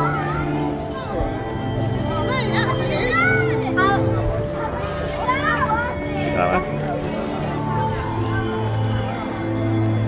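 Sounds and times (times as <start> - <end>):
children's voices: 0.0 - 10.0
faint background music: 0.0 - 10.0.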